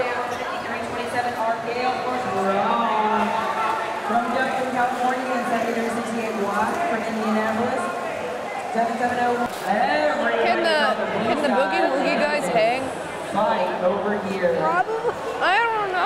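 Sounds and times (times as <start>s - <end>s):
crowd talking in a hall: 0.0s - 16.0s.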